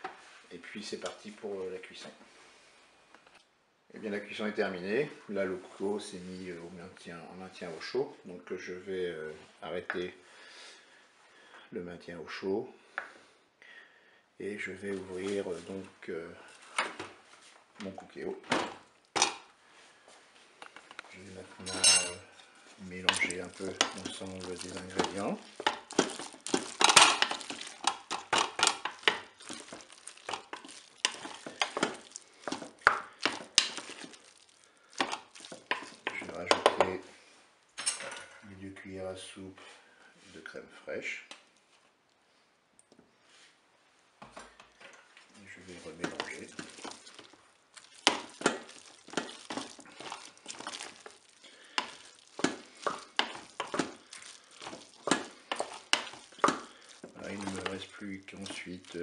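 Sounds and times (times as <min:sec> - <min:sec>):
wooden spatula scraping bowl: 0:21.6 - 0:37.0, 0:45.2 - 0:59.0.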